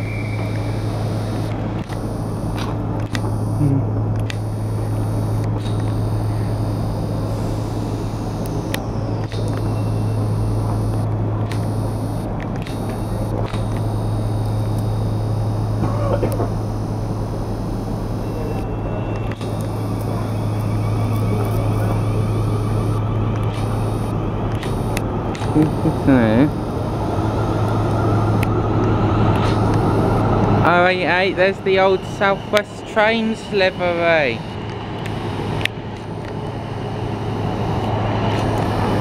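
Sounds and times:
electric train low hum: 0.0s - 39.0s
faint high whine: 0.0s - 39.0s
train rumble: 18.4s - 39.0s.

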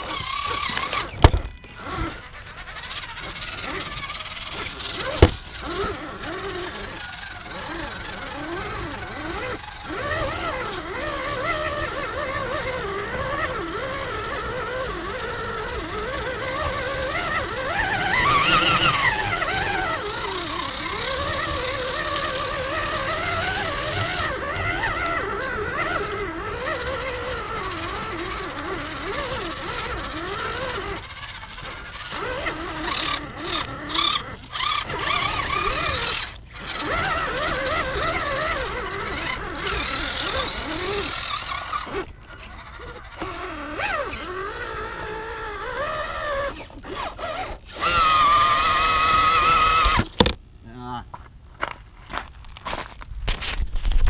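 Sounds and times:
electric motor and gearbox whining: 0.0s - 50.9s.

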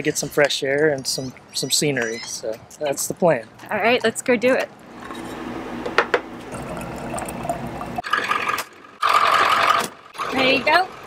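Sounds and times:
water filling a bottle: 6.5s - 10.4s.

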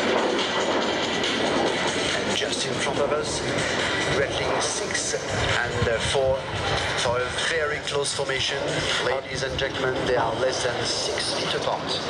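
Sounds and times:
jet engines flying past: 0.0s - 12.0s
commentator speaking: 2.2s - 12.0s.

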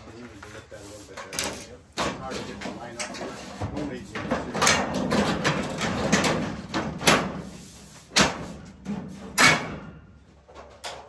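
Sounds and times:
panels knocking and clacking: 0.1s - 11.0s.

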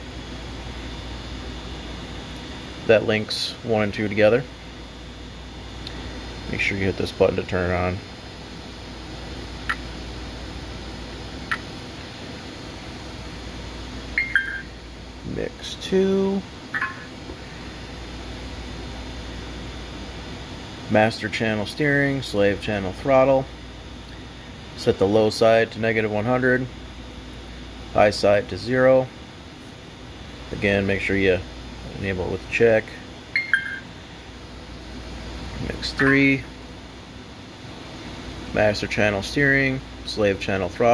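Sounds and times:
steady low hum: 0.0s - 40.9s
short button beeps: 14.2s - 14.7s, 33.4s - 33.8s.

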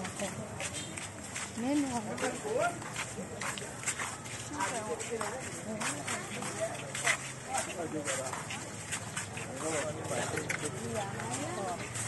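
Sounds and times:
crowd voices talking: 0.0s - 12.0s.

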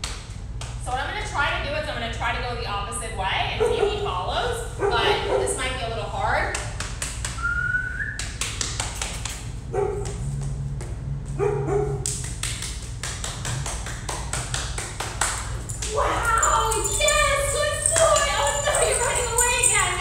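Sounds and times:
steady low hum: 0.0s - 20.0s
dogs barking: 3.5s - 5.9s, 9.7s - 10.3s, 11.3s - 12.2s, 15.6s - 20.0s.

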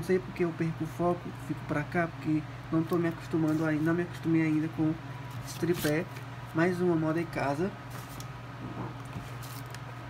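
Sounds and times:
steady low hum: 0.0s - 10.0s
soft brushes: 2.9s - 4.7s.

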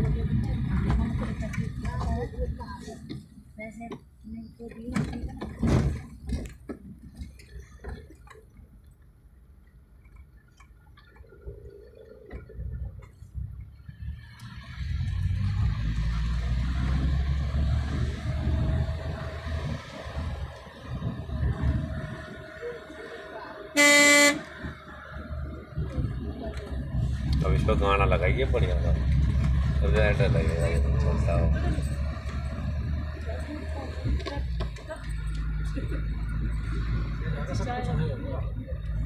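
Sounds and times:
car cabin road rumble: 0.0s - 39.0s
car horn honk: 23.7s - 24.7s.

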